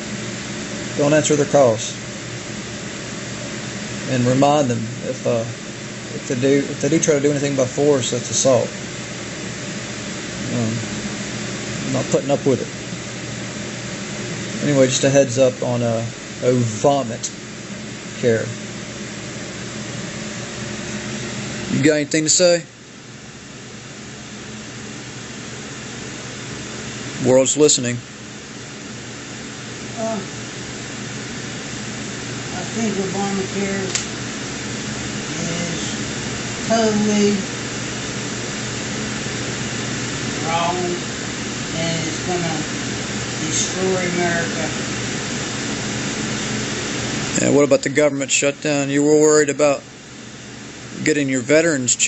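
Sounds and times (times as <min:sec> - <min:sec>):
steady hiss: 0:00.0 - 0:52.0.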